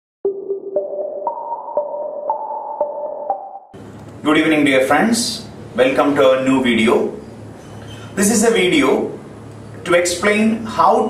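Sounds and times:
electronic jingle pinging notes: 0.3 - 3.7.

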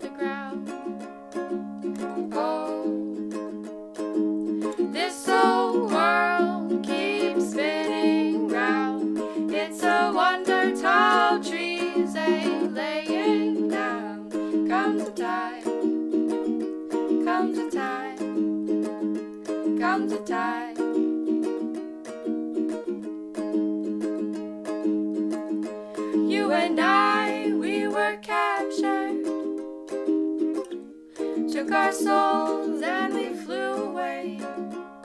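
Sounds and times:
woman singing with vibrato: 0.0 - 0.7, 2.2 - 3.2, 4.8 - 15.7, 17.2 - 18.3, 19.7 - 20.8, 26.1 - 29.3, 31.5 - 34.5
ukulele strumming chords: 0.0 - 35.0.

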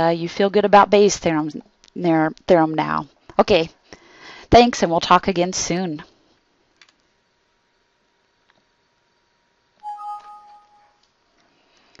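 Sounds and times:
two-tone computer alert chime: 9.8 - 11.0.

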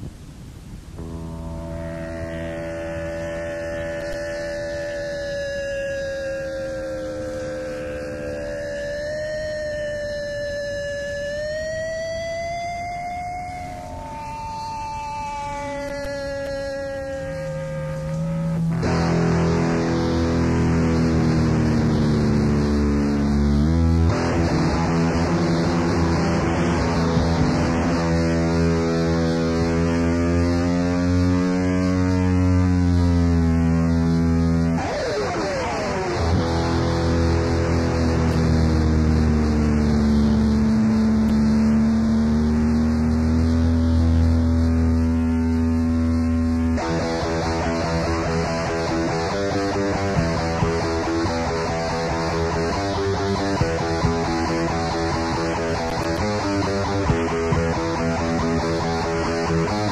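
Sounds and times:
punk band with distorted guitar: 1.0 - 12.8, 17.5 - 59.9
wavering electric guitar tones: 1.0 - 59.9.

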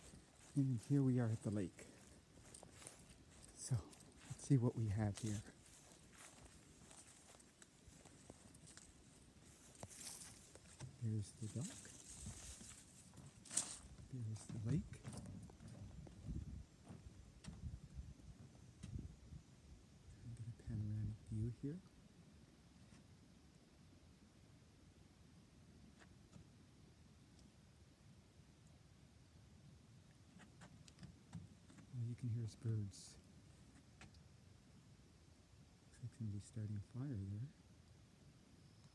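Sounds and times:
soft rustle: 0.0 - 18.5, 30.3 - 34.3
faint footsteps: 0.0 - 19.1.

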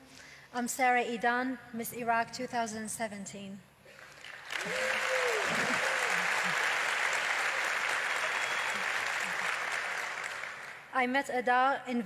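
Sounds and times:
audience applause: 4.0 - 10.9
person cheering: 4.6 - 6.7.

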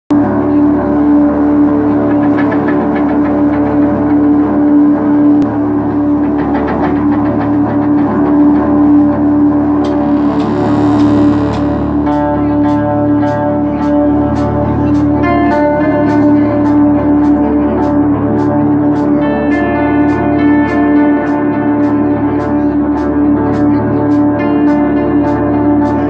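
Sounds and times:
bass guitar: 0.1 - 26.0
drums: 0.1 - 26.0
electric guitar: 0.1 - 26.0.

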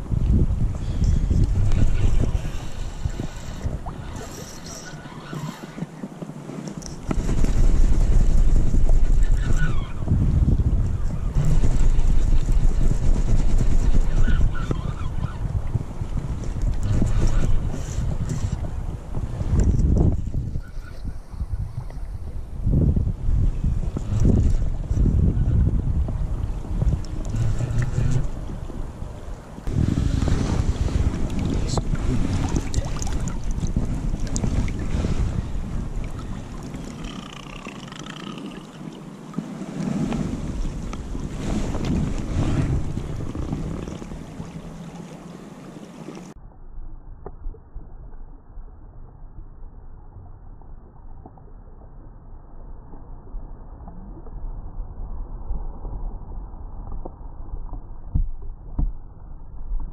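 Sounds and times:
wind buffeting microphone: 0.0 - 46.4.

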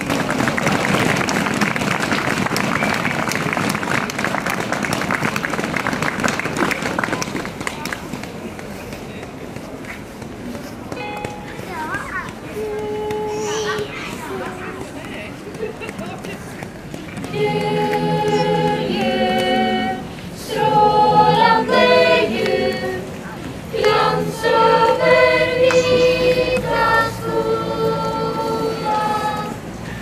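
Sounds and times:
audience applauding: 0.0 - 8.1
crowd voices: 0.0 - 30.0
short held sung notes: 12.6 - 13.8, 17.3 - 23.0.

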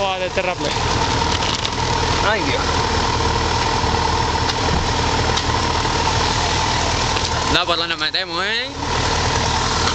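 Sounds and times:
scooter engine idling: 0.0 - 9.9.

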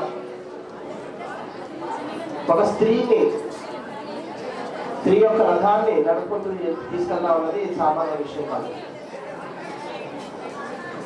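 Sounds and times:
faint audience chatter: 0.0 - 11.0
man speaking into a microphone: 2.5 - 3.5, 5.0 - 8.8.

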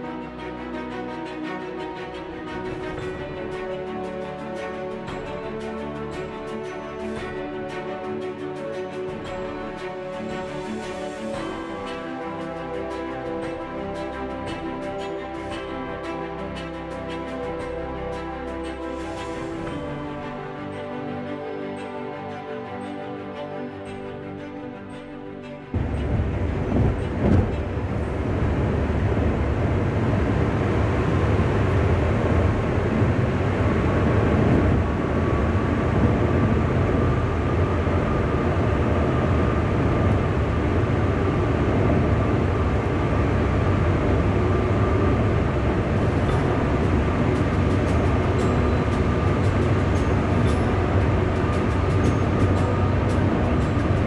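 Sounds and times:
road roar in tunnel: 0.0 - 54.0.

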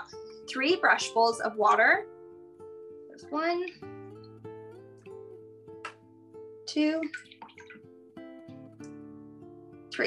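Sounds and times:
plucked acoustic guitar music: 0.0 - 10.0.

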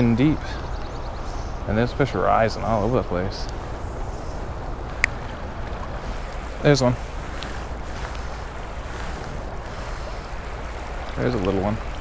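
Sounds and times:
wind rumble on microphone: 0.0 - 12.0
stream rushing over rocks: 1.6 - 12.0.

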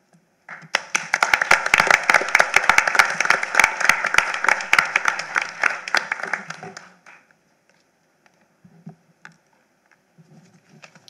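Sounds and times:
audience applauding: 0.5 - 7.3.

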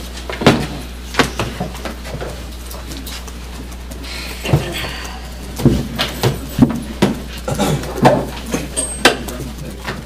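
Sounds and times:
low room hum: 0.0 - 10.0
papers and binders knocking: 5.6 - 10.0.

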